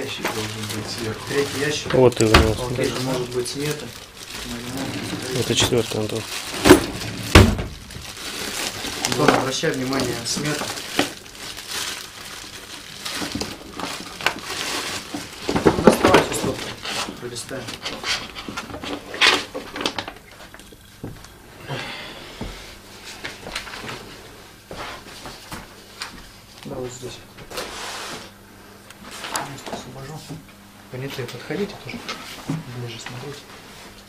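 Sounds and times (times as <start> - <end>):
papers rustling and crinkling: 0.0 - 21.4, 22.9 - 28.4.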